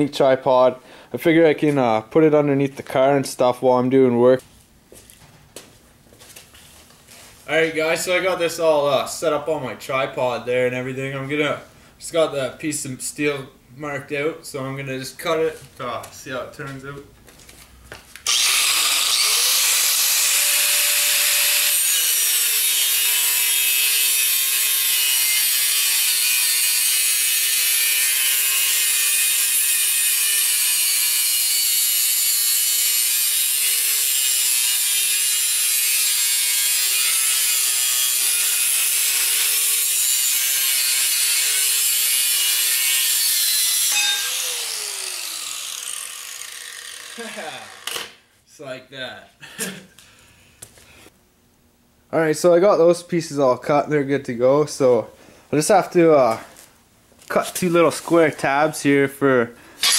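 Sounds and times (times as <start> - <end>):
angle grinder cutting steel: 18.2 - 48.2.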